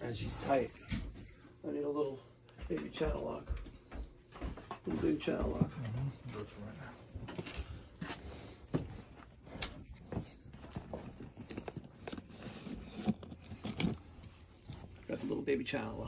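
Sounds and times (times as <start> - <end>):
hand tools clinking in a bag: 9.4 - 14.9.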